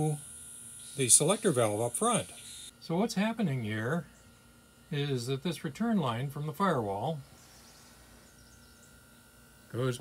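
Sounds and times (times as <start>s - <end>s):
man speaking: 1.0s - 4.0s, 4.9s - 7.2s, 9.7s - 10.0s.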